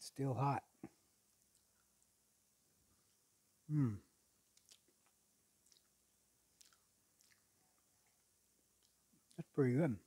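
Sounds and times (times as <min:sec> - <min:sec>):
person chewing crunchy food: 0:04.5 - 0:09.4.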